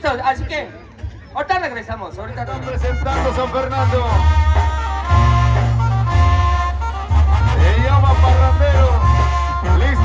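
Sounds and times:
brass band playing: 2.3s - 10.0s
sousaphone bass line: 2.3s - 10.0s.

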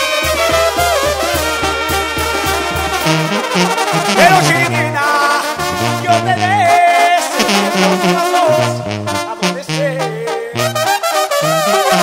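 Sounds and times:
brass band playing live: 0.0s - 12.0s
tuba bass notes: 0.0s - 12.0s.

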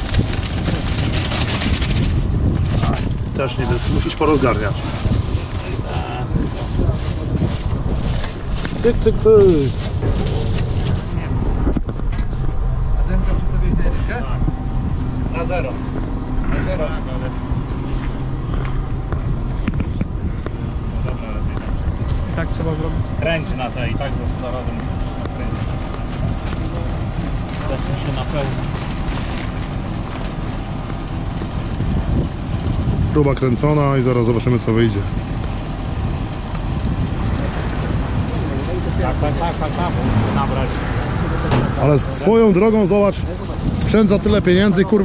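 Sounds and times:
tractor engine idling: 0.0s - 44.1s
faint voices: 2.6s - 45.0s.

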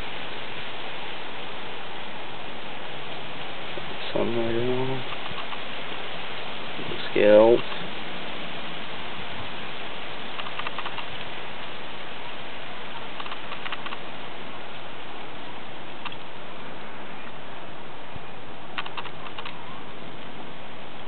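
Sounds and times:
steady hiss: 0.0s - 21.0s
faint clicks: 5.0s - 5.6s, 10.3s - 11.3s, 13.2s - 14.0s, 16.0s - 16.3s, 18.8s - 19.6s.

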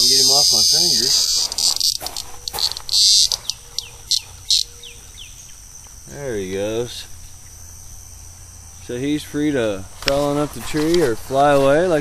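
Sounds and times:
cicada buzzing in bursts: 0.0s - 11.1s.

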